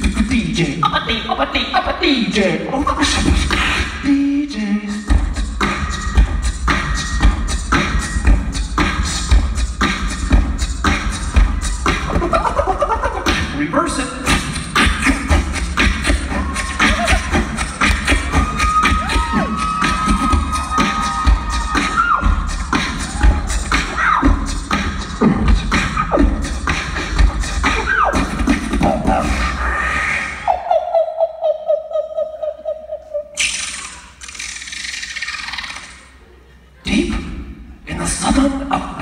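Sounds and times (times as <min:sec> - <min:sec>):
beatboxed drum beat: 0:00.0 - 0:30.9, 0:33.3 - 0:36.1
audience cheering: 0:16.1 - 0:24.3.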